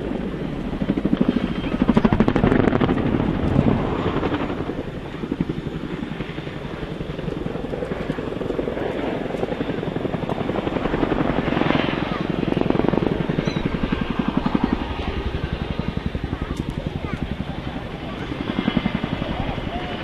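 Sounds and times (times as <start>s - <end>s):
helicopter rotors chopping: 0.0s - 20.0s.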